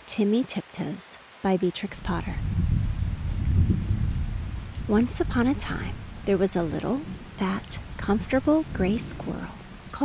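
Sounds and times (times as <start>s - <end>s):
steady rain: 0.0s - 10.0s
thunder rumble: 2.0s - 10.0s.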